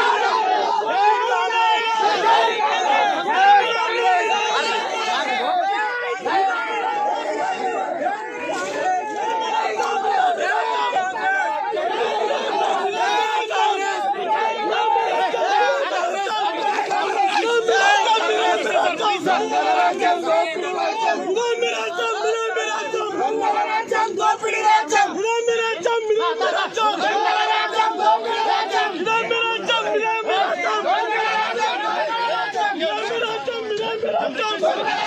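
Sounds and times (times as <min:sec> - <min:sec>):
crowd of men shouting: 0:00.0 - 0:35.0.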